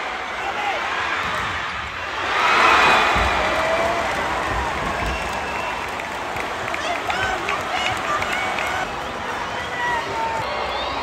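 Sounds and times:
arena crowd cheering: 0.0s - 11.0s.

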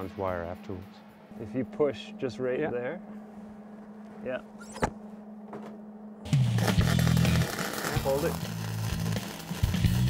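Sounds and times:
steady low hum: 0.0s - 7.9s.

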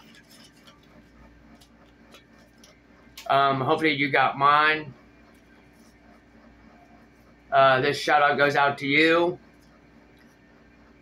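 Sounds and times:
paper mail handling noises: 0.0s - 2.8s
steady low background hum: 0.0s - 11.0s.

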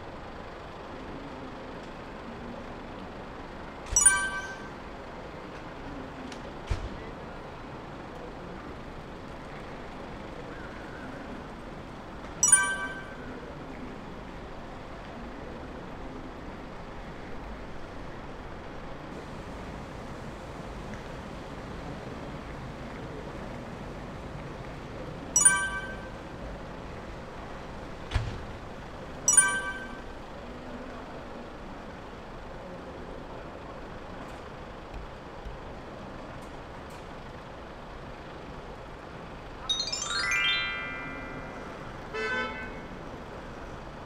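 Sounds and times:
parking lot background noise: 0.0s - 44.0s
short sharp ringing: 3.9s - 4.8s.

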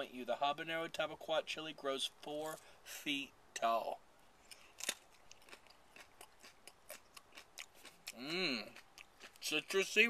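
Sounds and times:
crunching of pepper being chewed: 4.4s - 10.0s.

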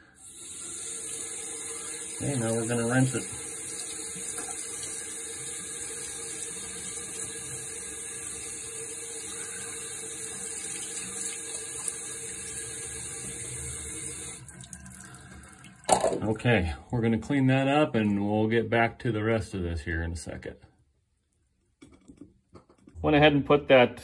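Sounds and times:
water running from tap: 0.0s - 16.8s.

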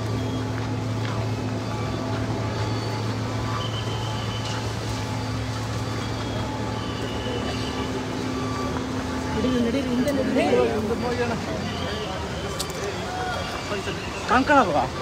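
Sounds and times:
low engine hum: 0.0s - 15.0s
street noise: 0.0s - 15.0s.

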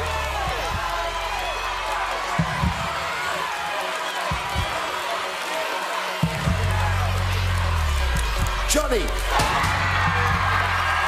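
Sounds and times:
studio audience shouting: 0.0s - 11.0s.

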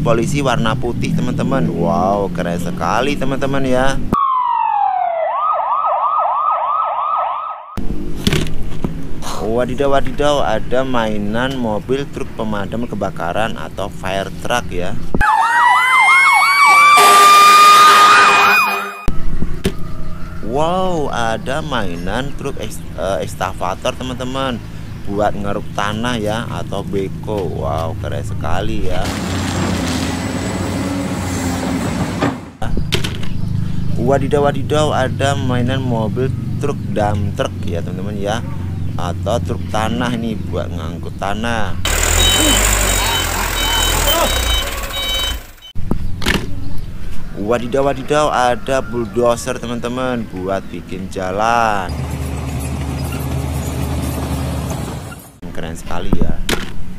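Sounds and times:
fire engine sirens: 4.2s - 7.8s, 15.2s - 19.1s, 41.9s - 45.7s
truck engine rumbling: 7.8s - 48.3s, 49.3s - 56.4s
reversing alarm beeping: 15.2s - 19.1s, 41.9s - 45.8s.

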